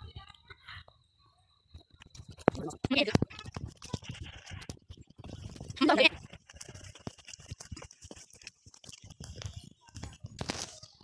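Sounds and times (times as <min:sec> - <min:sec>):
footsteps on gravel: 0:02.6 - 0:10.9.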